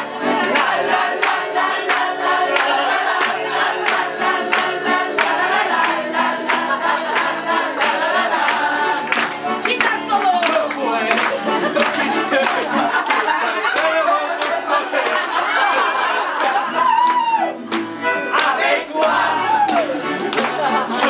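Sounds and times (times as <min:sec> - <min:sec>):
crowd singing along: 0:00.0 - 0:09.6, 0:10.8 - 0:16.8, 0:18.2 - 0:21.0
acoustic guitar: 0:00.0 - 0:21.0
rhythmic hand-clapping: 0:00.0 - 0:21.0.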